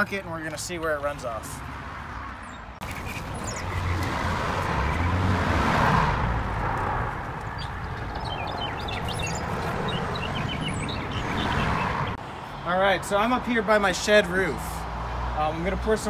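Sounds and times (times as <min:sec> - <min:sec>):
birds chirping: 0:00.5 - 0:05.6, 0:06.4 - 0:12.7
car passing by: 0:01.7 - 0:12.2.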